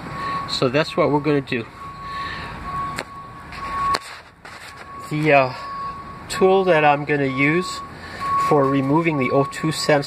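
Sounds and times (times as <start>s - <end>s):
high-pitched electronic beep: 0.2s - 4.0s, 4.7s - 10.0s.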